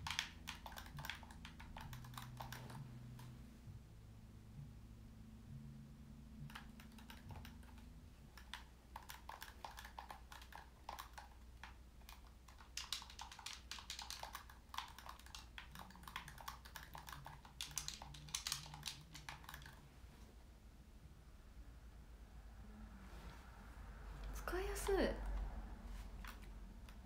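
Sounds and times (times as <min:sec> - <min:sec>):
small buttons clicking rapidly: 0:00.0 - 0:03.4, 0:06.4 - 0:19.8.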